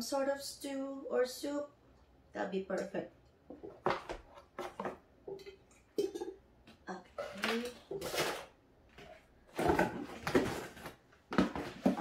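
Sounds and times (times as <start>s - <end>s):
cast-iron pot handled: 3.5s - 6.4s.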